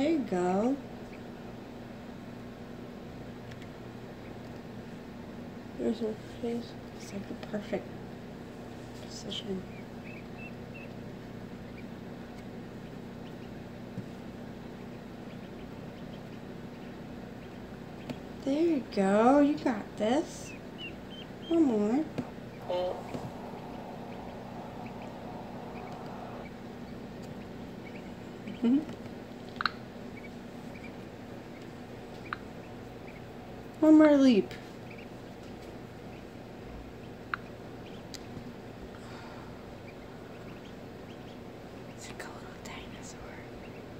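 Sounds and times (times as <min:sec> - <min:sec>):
low electrical hum: 0:00.0 - 0:43.9
ducklings peeping: 0:03.6 - 0:04.6, 0:09.1 - 0:34.0, 0:34.6 - 0:38.7, 0:39.5 - 0:42.3, 0:42.9 - 0:43.9.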